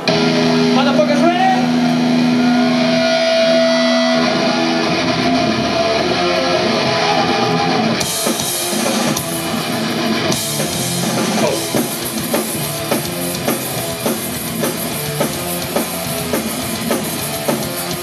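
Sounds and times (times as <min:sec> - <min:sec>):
distorted electric guitars: 0:00.0 - 0:18.0
drums and cymbals: 0:07.9 - 0:18.0.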